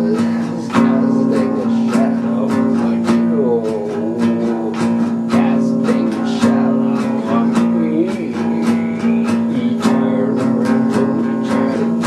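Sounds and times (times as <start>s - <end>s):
acoustic guitar strummed: 0.0s - 12.0s.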